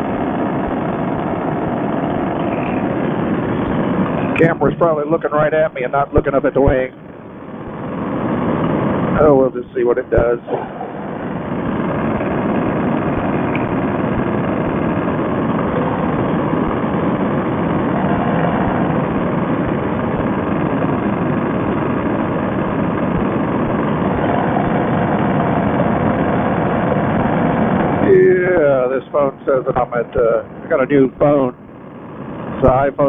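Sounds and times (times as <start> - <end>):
paramotor engine droning: 0.0 - 33.0.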